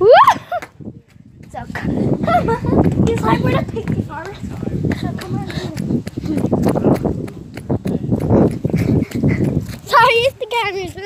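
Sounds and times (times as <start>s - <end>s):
wind on microphone: 0.0s - 11.0s
running footfalls on grass: 1.3s - 10.3s
hard breathing: 1.7s - 2.6s, 4.4s - 7.2s, 7.8s - 9.9s.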